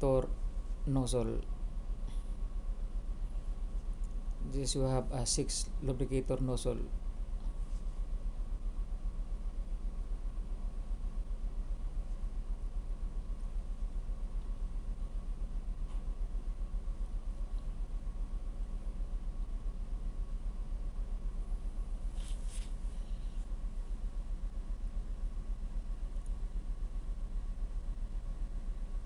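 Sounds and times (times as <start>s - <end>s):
engine room machinery drone: 0.0s - 29.0s
faint constant hum: 0.0s - 29.0s.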